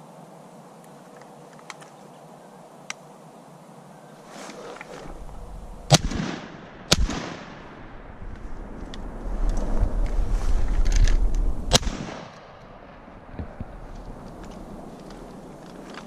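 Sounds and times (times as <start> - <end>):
low rumble: 5.0 - 15.6
shotgun shots: 5.9 - 7.9, 11.7 - 12.5.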